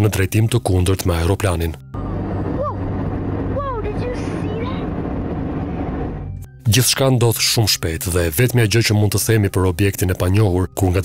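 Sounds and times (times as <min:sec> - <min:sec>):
low engine drone: 0:01.8 - 0:06.5
rushing noise: 0:02.0 - 0:06.4.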